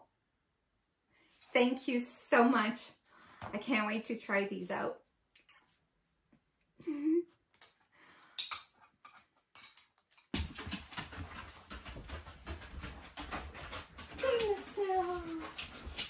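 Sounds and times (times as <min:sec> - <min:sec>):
steel knives clinking together: 0:08.4 - 0:08.7
dog moving on floor: 0:10.2 - 0:16.0.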